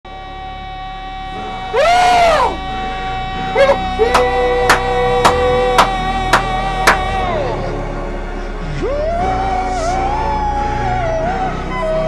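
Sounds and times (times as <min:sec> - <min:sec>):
steady held tone: 0:00.1 - 0:12.0
man shouting excitedly: 0:03.6 - 0:05.8
man yelping: 0:03.6 - 0:05.8.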